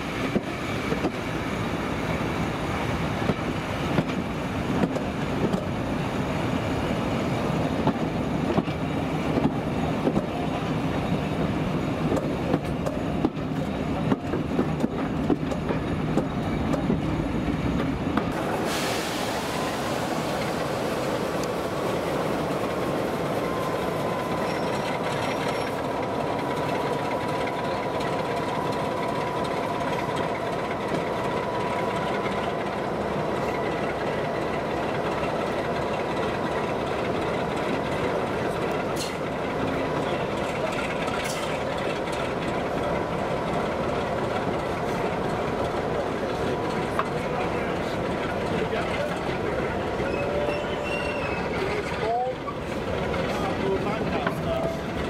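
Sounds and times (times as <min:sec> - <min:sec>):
diesel locomotive engine: 0:00.0 - 0:55.0
rumble of train wheels: 0:00.0 - 0:55.0.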